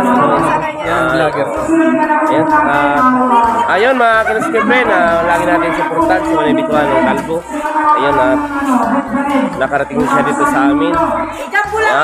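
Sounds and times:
man speaking drawn-out syllables: 0:00.0 - 0:12.0.

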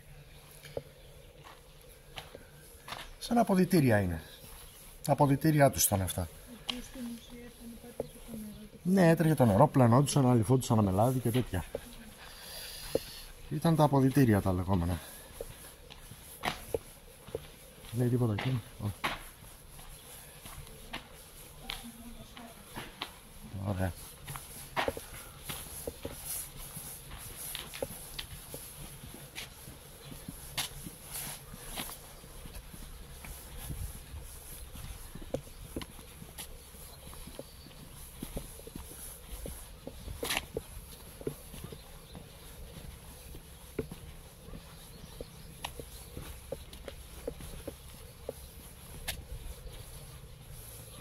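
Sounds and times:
footsteps on dirt and stone: 0:00.0 - 0:51.0.

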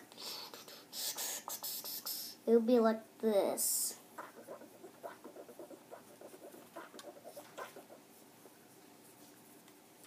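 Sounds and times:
hands rubbing rubber ball: 0:04.2 - 0:08.6.

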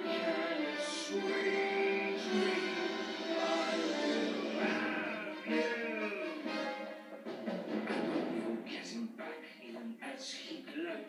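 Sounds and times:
orchestral music: 0:00.0 - 0:08.9
choir-like singing voices: 0:00.0 - 0:09.4.

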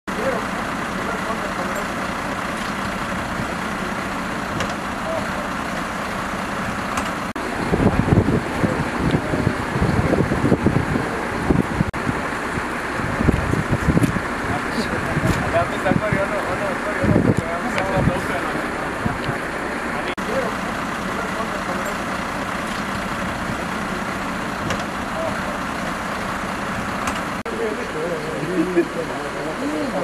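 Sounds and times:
diesel engine idling: 0:00.1 - 0:30.0
muffled voices: 0:14.4 - 0:22.0.

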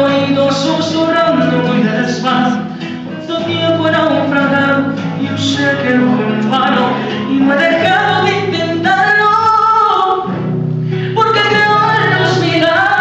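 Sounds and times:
man singing into a microphone: 0:00.0 - 0:10.3, 0:11.2 - 0:13.0
strummed acoustic guitar: 0:00.0 - 0:13.0.

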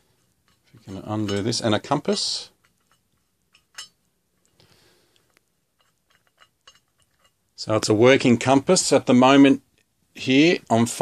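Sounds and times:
metal cap unscrewing clicks: 0:05.8 - 0:07.4.

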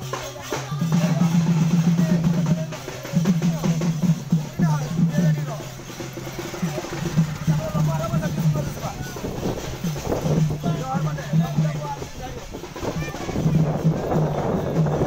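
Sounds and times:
drums beating: 0:00.0 - 0:15.0
people chattering: 0:00.0 - 0:15.0.

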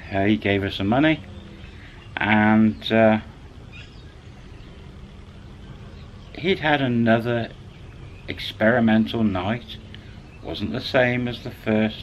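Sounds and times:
faint constant tone: 0:00.0 - 0:12.0
low background hum: 0:00.0 - 0:12.0.

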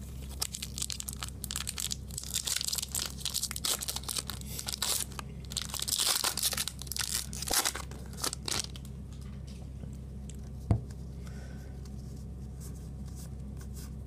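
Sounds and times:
foil wrapper crinkling and tearing: 0:00.2 - 0:08.9.

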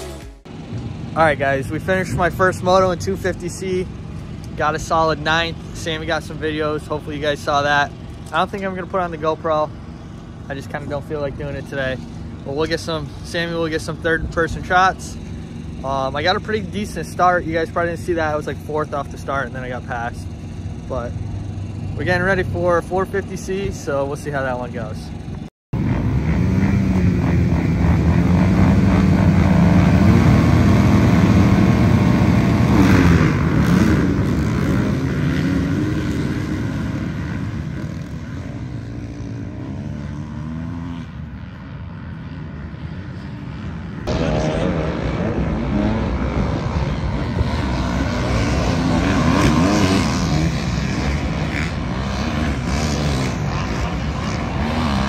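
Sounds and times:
dirt bike engines racing: 0:00.0 - 0:55.0.

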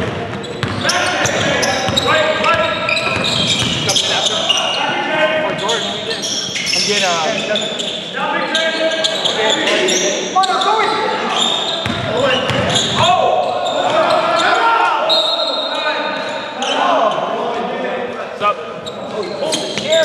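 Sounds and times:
players shouting and chatter: 0:00.0 - 0:20.0
shoe squeaks: 0:00.4 - 0:17.2, 0:18.8 - 0:20.0
basketball bouncing on hardwood: 0:03.2 - 0:03.8.

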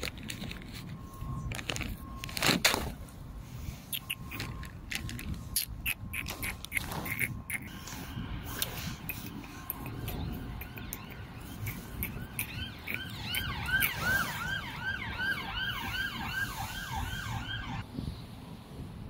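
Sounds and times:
siren yelping: 0:03.9 - 0:17.8.

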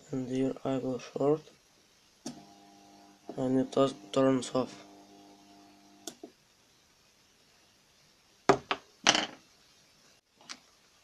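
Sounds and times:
clattering thud on tabletop: 0:08.5 - 0:09.4.

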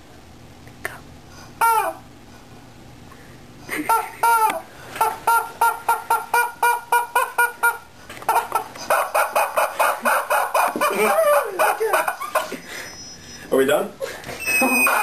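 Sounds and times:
rubber chicken squawking: 0:04.2 - 0:13.3, 0:14.4 - 0:15.0.

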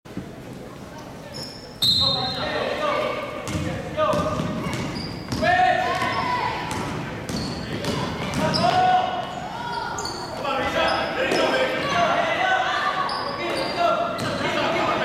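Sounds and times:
basketball bouncing: 0:03.4 - 0:08.9
sneakers squeaking on hardwood: 0:03.4 - 0:12.2, 0:13.0 - 0:14.6.

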